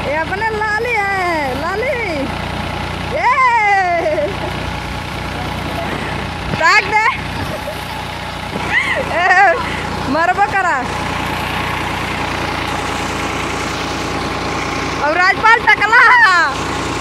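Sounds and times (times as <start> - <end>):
tractor diesel engine running: 0.0 - 17.0
voices calling out: 0.0 - 17.0.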